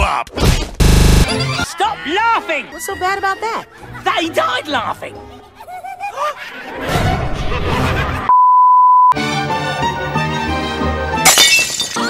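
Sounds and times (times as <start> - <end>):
cartoon background music: 1.2 - 8.0.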